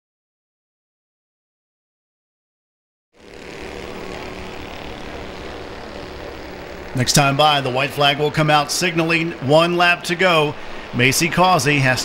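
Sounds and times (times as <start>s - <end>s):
race car engines droning: 3.2s - 12.0s.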